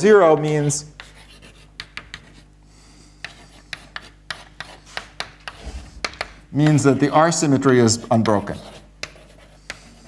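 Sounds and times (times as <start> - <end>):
faint room hum: 0.0 - 10.0
chalk tapping and scratching: 0.2 - 2.5, 3.2 - 10.0.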